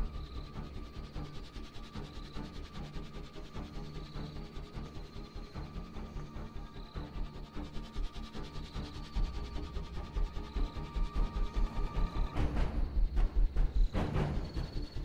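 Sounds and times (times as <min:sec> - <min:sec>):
suspenseful film score: 0:00.0 - 0:15.0.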